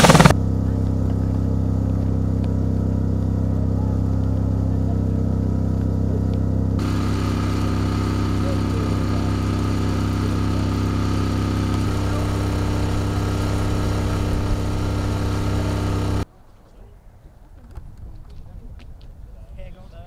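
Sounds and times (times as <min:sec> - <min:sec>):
generator engine drone: 0:00.0 - 0:16.2.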